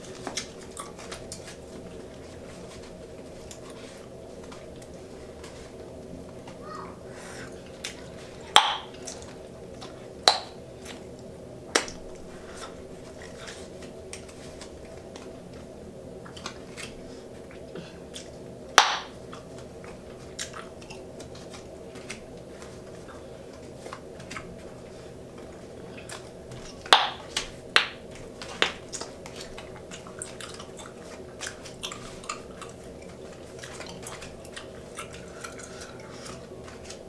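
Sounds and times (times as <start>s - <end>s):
bubblegum bubble popping: 8.5s - 8.9s
bubblegum bubbles popping: 8.5s - 8.9s, 10.3s - 10.6s, 26.9s - 27.2s.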